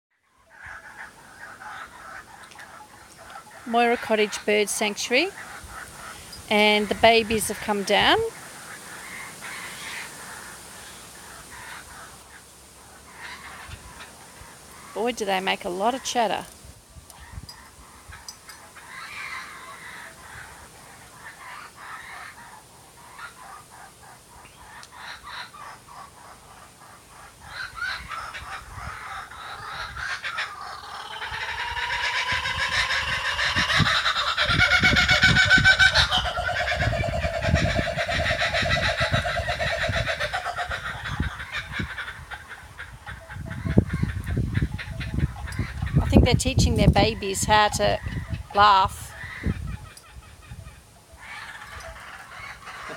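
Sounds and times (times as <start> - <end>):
kookaburras laughing: 27.8 - 50.6.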